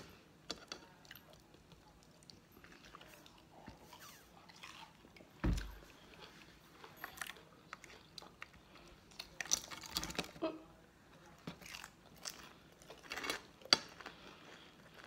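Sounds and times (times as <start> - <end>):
chewing crunchy fried food: 0.6 - 10.4, 11.2 - 15.0.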